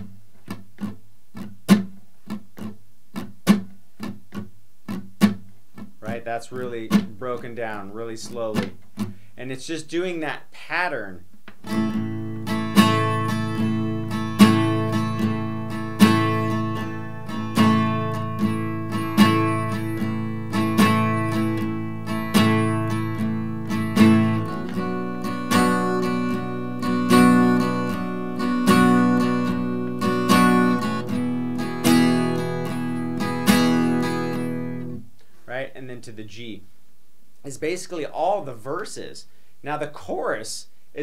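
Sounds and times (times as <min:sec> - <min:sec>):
acoustic guitar strumming: 0:00.0 - 0:36.6.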